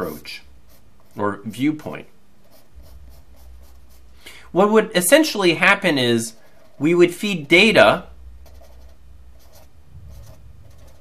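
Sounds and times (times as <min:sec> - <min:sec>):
faint low hum: 0:00.0 - 0:11.0
pen scratching on paper: 0:02.4 - 0:04.1, 0:08.4 - 0:11.0.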